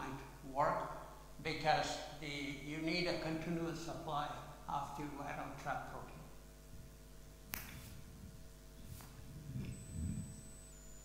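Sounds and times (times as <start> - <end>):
faint high-pitched whine: 0.0 - 11.0
steady electrical hum: 0.0 - 11.0.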